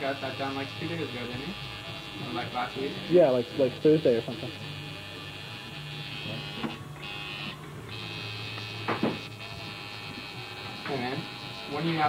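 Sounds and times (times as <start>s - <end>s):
tattoo machine buzzing: 0.0s - 12.0s.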